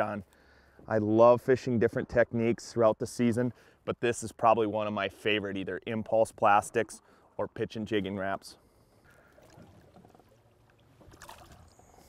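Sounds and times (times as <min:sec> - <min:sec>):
water splashing: 0:09.1 - 0:12.0.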